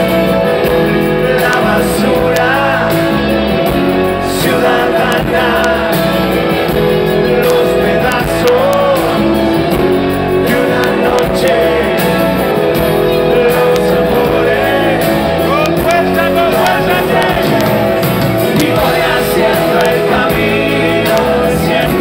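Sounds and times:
congas: 0:00.0 - 0:22.0
drums: 0:00.0 - 0:22.0
electric guitars: 0:00.0 - 0:22.0
sliding lead melody: 0:00.0 - 0:22.0.

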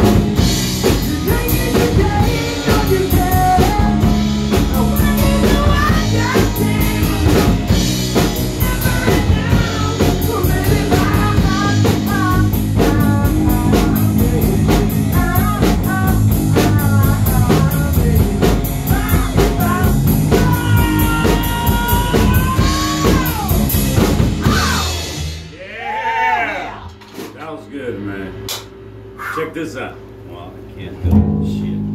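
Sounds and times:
rock band playing live: 0:00.0 - 0:25.9, 0:31.0 - 0:31.9
lead vocal singing: 0:00.8 - 0:23.8.

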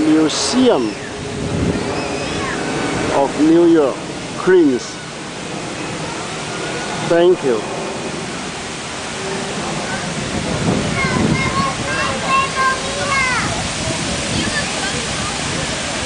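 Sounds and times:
fountain water splashing: 0:00.0 - 0:16.0
people's voices: 0:09.2 - 0:16.0.

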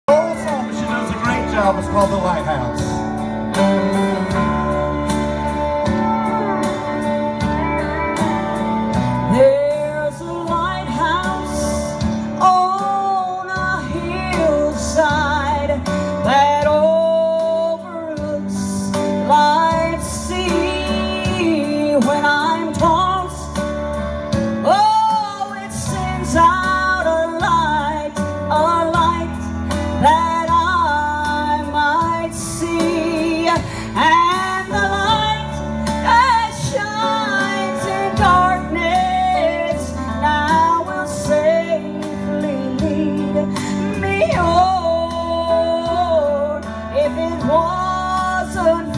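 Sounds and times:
instrumental backing with guitar: 0:00.0 - 0:48.9
woman singing gospel: 0:09.2 - 0:23.5, 0:24.6 - 0:48.9.

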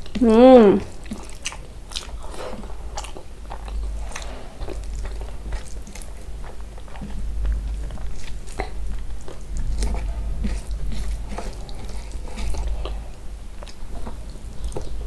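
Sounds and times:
person chewing food: 0:00.8 - 0:15.0.

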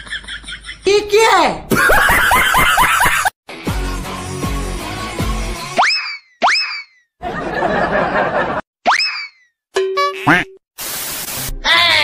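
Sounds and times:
cartoon boing: 0:10.0 - 0:10.6.

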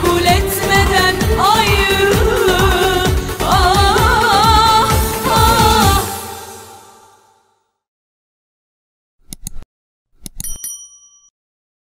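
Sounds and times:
quick clicks: 0:09.2 - 0:09.6
bright bell ding: 0:10.4 - 0:11.3.

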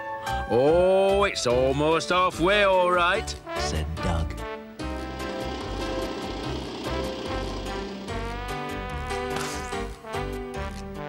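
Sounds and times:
light background music: 0:00.0 - 0:11.0
cement mixer drum turning: 0:04.9 - 0:09.8.

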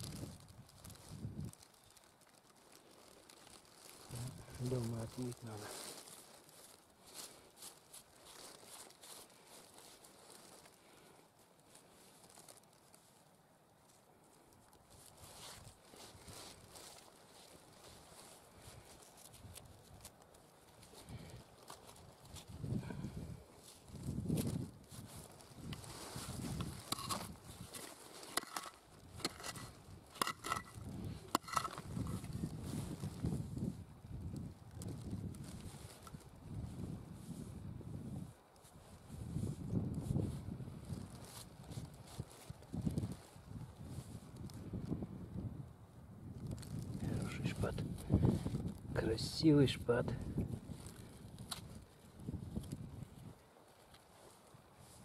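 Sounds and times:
fingers raking through gravel: 0:00.0 - 0:10.8, 0:23.6 - 0:33.2
stones clicking: 0:26.5 - 0:31.9.

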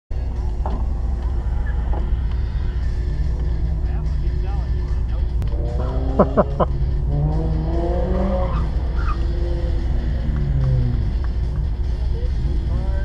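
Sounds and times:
car engine idling and revving: 0:00.1 - 0:13.0.

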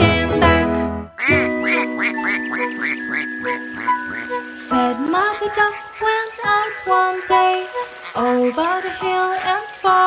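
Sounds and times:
children's song backing music: 0:00.0 - 0:10.0
cartoon duck quacking: 0:01.2 - 0:04.3.

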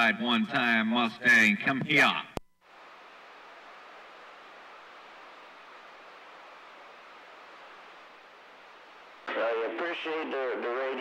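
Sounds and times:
radio static hiss: 0:00.0 - 0:11.0.

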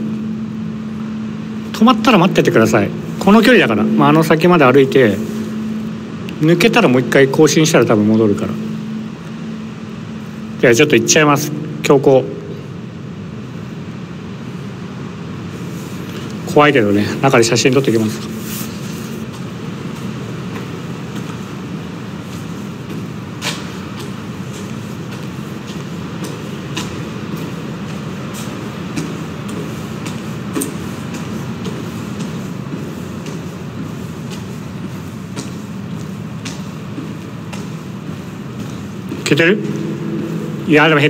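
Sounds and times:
steady low rumbling: 0:00.0 - 0:41.0.

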